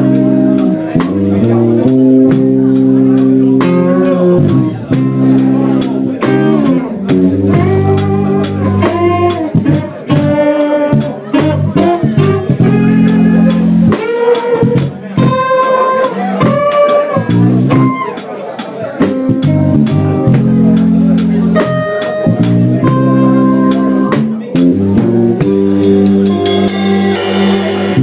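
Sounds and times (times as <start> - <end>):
electric bass: 0.0 - 18.2, 19.0 - 28.0
electric guitar lead lines: 0.0 - 18.3, 19.0 - 28.0
cymbals struck: 25.8 - 28.0.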